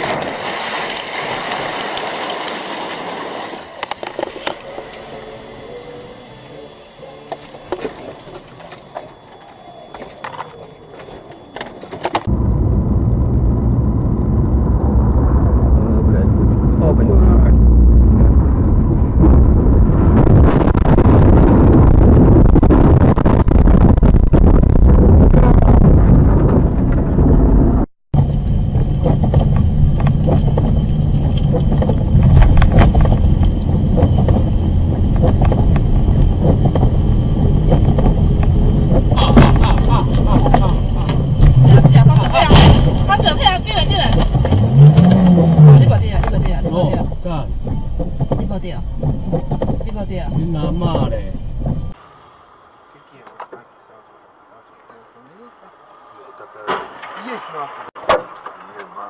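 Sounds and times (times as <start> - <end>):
car driving on wet road: 28.2 - 54.0
car collision crash: 39.2 - 45.8, 56.6 - 59.0.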